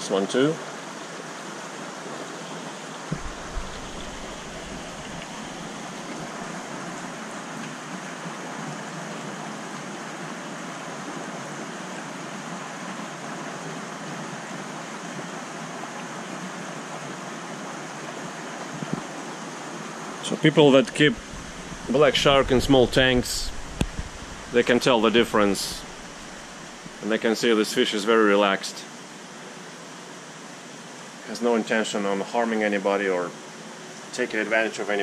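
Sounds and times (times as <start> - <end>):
water rushing and splashing: 0.0 - 32.6
soft thumps: 3.1 - 6.4, 21.2 - 24.6.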